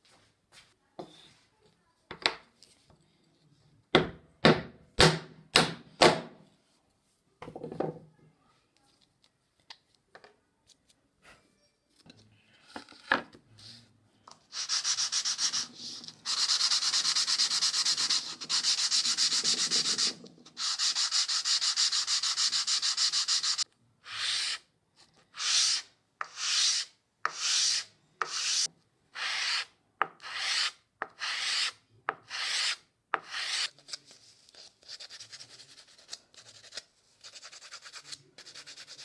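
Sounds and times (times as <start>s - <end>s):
wood sanding on sandpaper: 14.5s - 24.6s, 25.4s - 31.7s, 32.3s - 33.7s.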